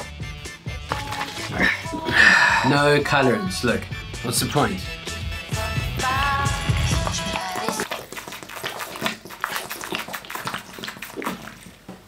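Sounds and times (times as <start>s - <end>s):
background music: 0.0s - 7.9s
person gulping from plastic bottle: 0.9s - 2.2s, 6.7s - 12.0s.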